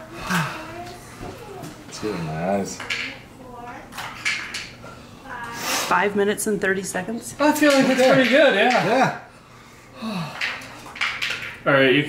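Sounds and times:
people sniffing: 0:05.6 - 0:06.0.

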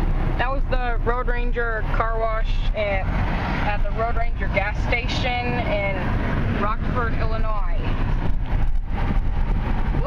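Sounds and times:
road and engine rumble in cab: 0:00.0 - 0:10.0.

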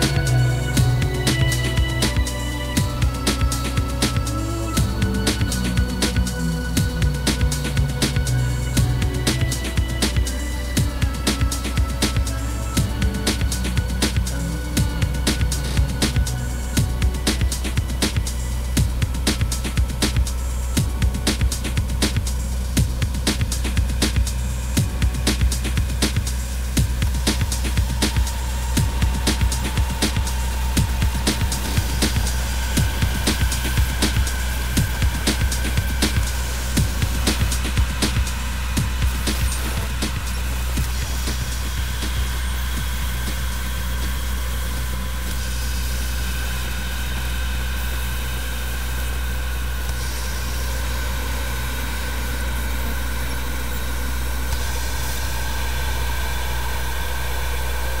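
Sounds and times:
electronic drum beat: 0:00.0 - 0:47.3
deep steady bass drone: 0:00.0 - 0:58.0.

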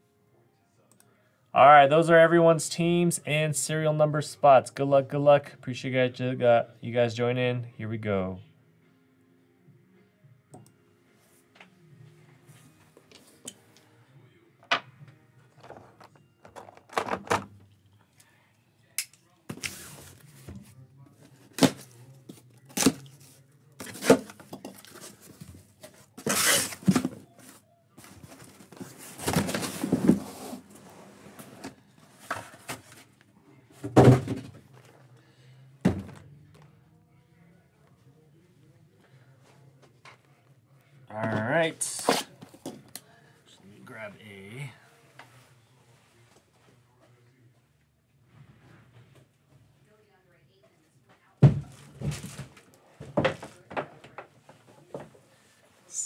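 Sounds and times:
cardboard rustling and scraping: 0:22.8 - 0:33.1.

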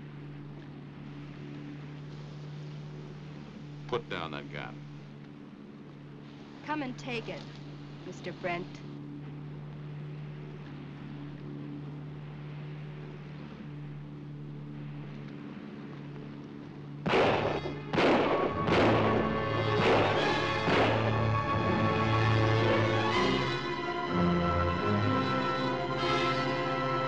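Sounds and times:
steady low hum: 0:00.0 - 0:27.0
dramatic orchestral music: 0:17.1 - 0:27.0.

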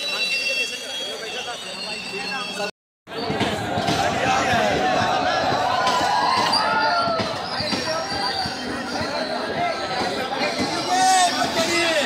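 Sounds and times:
train coach rolling on track: 0:00.0 - 0:12.0.

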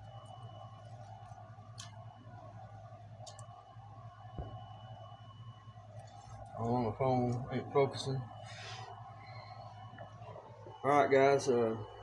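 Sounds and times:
faint high whine: 0:00.0 - 0:12.0
low room hum: 0:00.0 - 0:12.0
soft thump: 0:04.4 - 0:04.6.

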